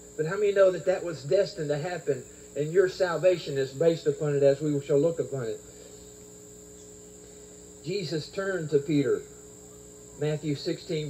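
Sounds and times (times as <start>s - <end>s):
crickets chirring: 0.0s - 11.0s
faint low hum: 0.0s - 11.0s.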